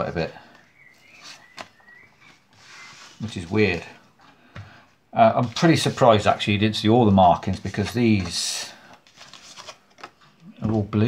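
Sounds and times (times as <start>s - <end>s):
cards rustling: 0.4s - 4.1s, 5.2s - 11.0s
card sliding on cloth mat: 2.3s - 3.8s.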